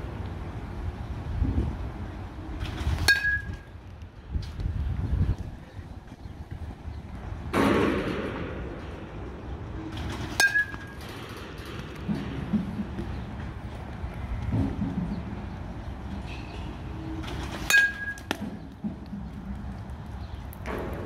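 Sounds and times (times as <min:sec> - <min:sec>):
metal bat hitting baseball: 0:03.0 - 0:03.6, 0:10.3 - 0:12.6, 0:17.6 - 0:18.6.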